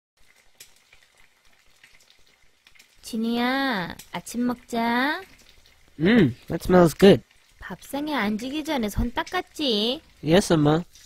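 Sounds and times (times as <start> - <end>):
food frying sizzle: 0.2 - 11.0.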